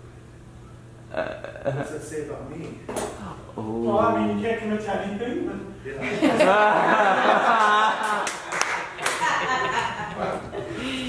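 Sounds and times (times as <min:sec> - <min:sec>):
person speaking: 0:03.2 - 0:06.2
sharp hand claps: 0:07.6 - 0:09.4.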